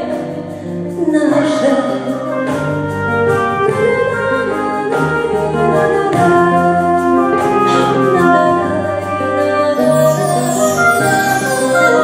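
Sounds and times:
acoustic guitar accompaniment: 0.0 - 12.0
clarinet melody: 0.0 - 12.0.

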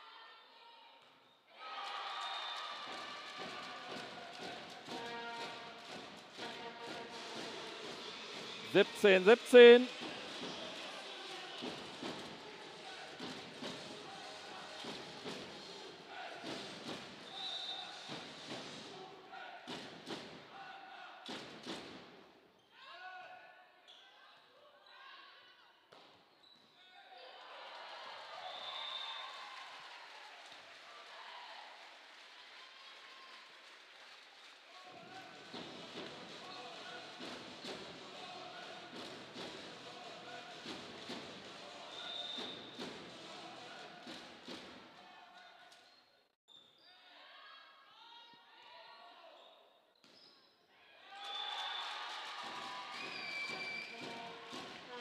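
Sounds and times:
voices in a hall: 0.0 - 46.1
players calling out: 8.7 - 9.9.

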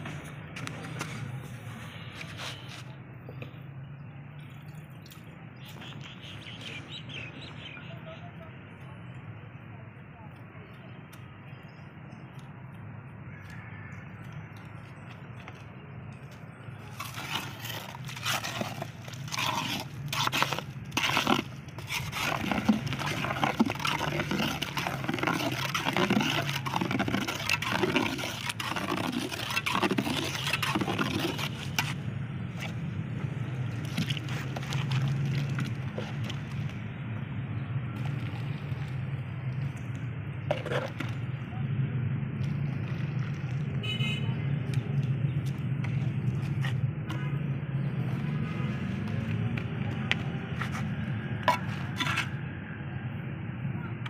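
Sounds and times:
trowel scraping cement mortar: 0.0 - 3.0, 16.8 - 32.8, 33.7 - 36.7, 40.5 - 41.3, 49.7 - 52.4.

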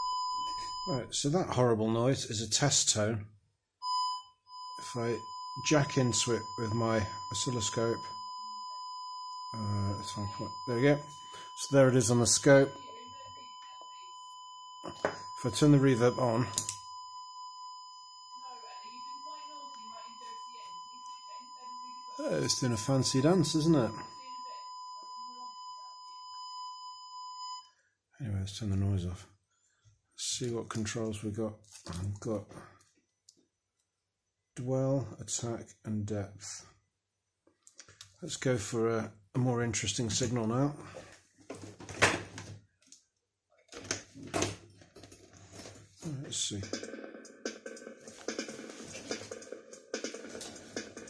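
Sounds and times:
high-pitched sine tone with reverb: 3.9 - 27.6.

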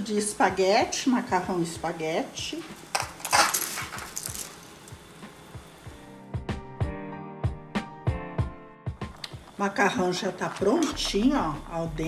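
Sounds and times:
water boiling in a pot: 3.8 - 6.0, 8.9 - 12.0.

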